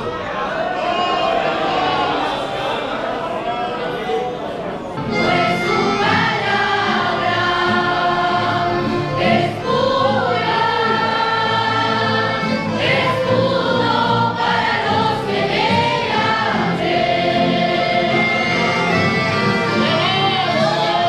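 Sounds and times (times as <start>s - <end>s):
choir singing a hymn: 5.0s - 21.0s.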